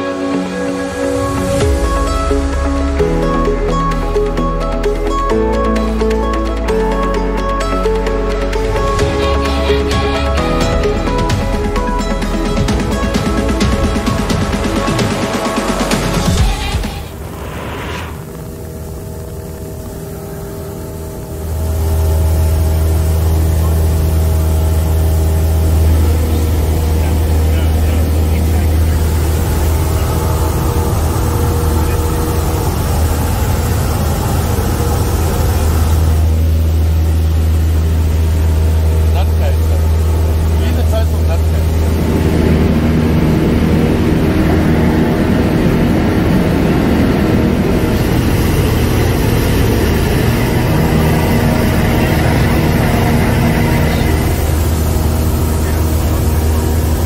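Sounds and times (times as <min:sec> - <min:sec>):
airplane engine and propeller droning: 0:00.0 - 0:57.0.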